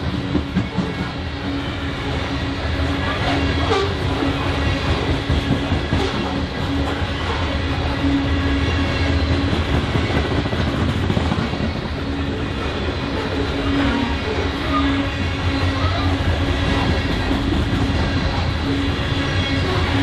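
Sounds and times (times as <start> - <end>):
steel wheels rumbling on rail: 0.0 - 20.0.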